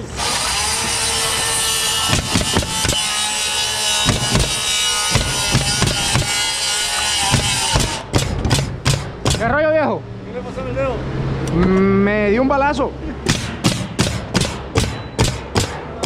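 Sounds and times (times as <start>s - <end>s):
power saw cutting: 0.0s - 8.7s
sharp knocks: 2.1s - 3.2s, 4.0s - 9.6s, 13.3s - 16.0s.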